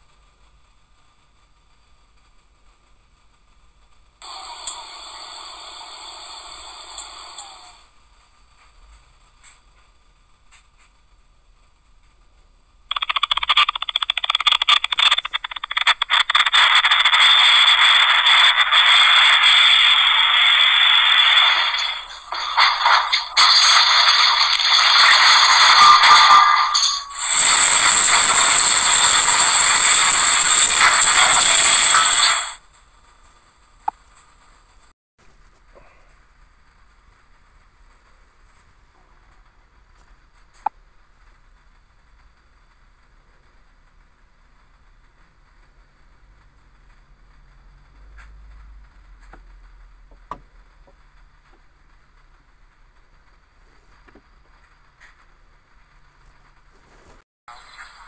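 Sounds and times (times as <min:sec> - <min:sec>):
harsh noise: 0:10.5 - 0:58.0.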